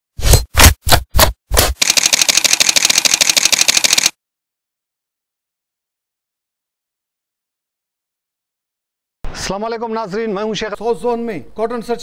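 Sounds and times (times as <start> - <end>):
rapid camera shutter clicks: 1.6 - 4.2.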